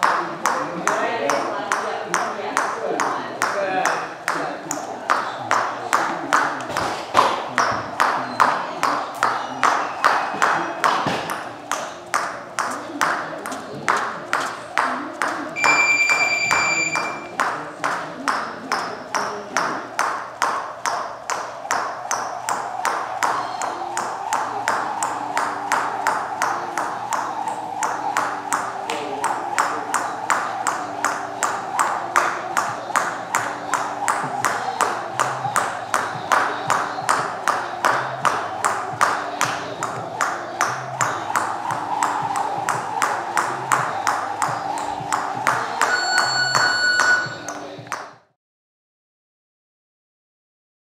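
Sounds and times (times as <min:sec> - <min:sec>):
jump rope slapping floor mats: 0:00.0 - 0:48.0
short electronic beep: 0:15.6 - 0:17.4, 0:45.8 - 0:47.5.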